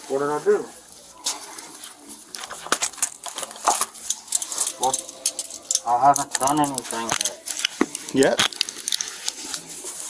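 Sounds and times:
handcuffs clicking and rattling: 2.3 - 9.6
clothing rustling against microphone: 6.4 - 10.0.

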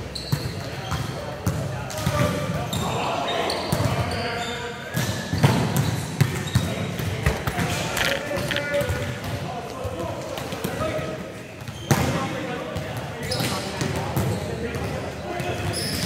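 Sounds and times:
murmur of players' voices: 0.0 - 16.0
hands smacking volleyballs: 7.3 - 8.9.

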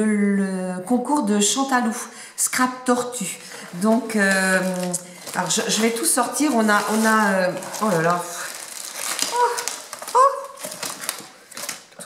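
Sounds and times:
plastic packaging rustling: 3.0 - 12.0.

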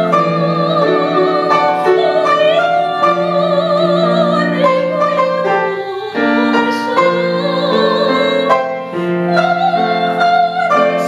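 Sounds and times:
grand piano: 0.0 - 11.0
woman singing classical: 0.0 - 11.0.

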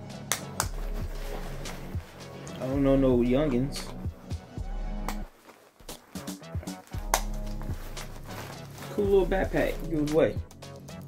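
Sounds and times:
low background music: 0.0 - 11.0
fabric bag clicks and rustles: 5.2 - 10.3.

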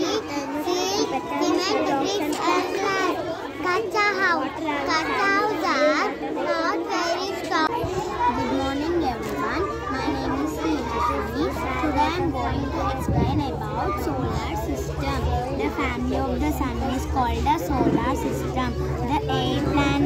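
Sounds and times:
child talking: 0.0 - 20.0
children chattering: 0.0 - 20.0.

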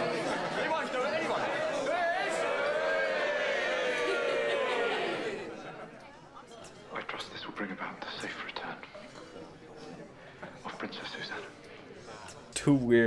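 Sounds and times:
group exclamation: 0.0 - 5.7
murmuring voices: 0.0 - 12.6.

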